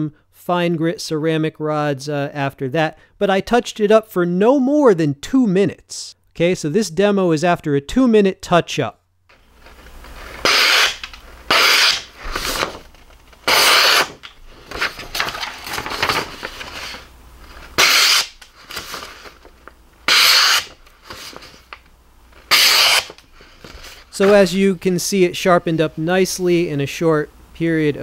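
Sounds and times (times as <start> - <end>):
paper rustling: 9.3 - 24.5
knife slicing paper: 9.6 - 19.5, 20.1 - 21.8, 22.4 - 23.2.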